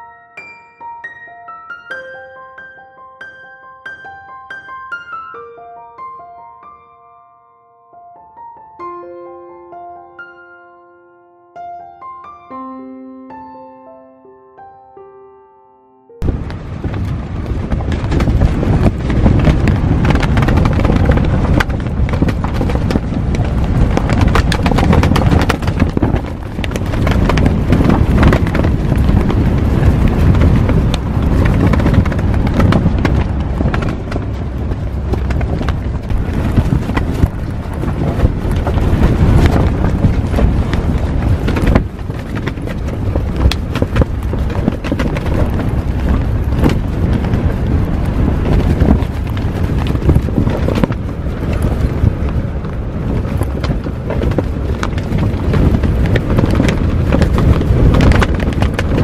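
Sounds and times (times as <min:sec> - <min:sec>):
tent fabric flapping: 0:16.2 - 0:59.0
wind hitting microphone: 0:16.2 - 0:59.0.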